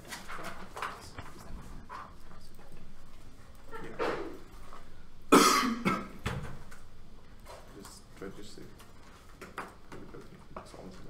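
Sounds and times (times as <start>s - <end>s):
person coughing: 5.3s - 6.2s.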